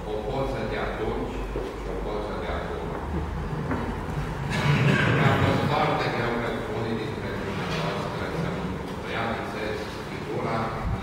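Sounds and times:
murmur of many voices: 0.0 - 11.0.

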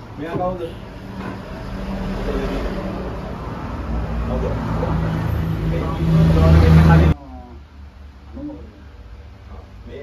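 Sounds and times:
loud low engine-like hum: 0.0 - 10.0.

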